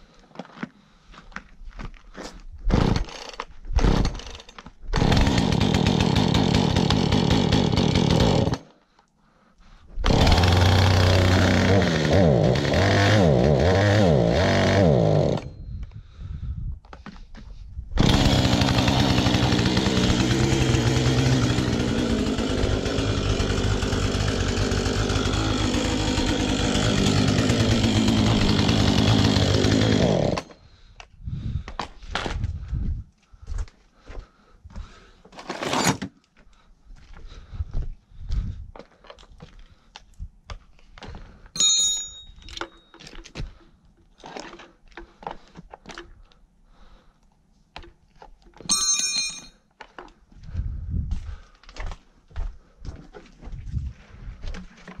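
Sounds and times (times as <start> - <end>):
chainsaw pull cord: 2.7 - 8.7, 10.0 - 15.6, 18.0 - 30.6, 35.3 - 36.1
chainsaw running and revving: 5.0 - 8.7, 10.0 - 15.5, 18.0 - 30.6.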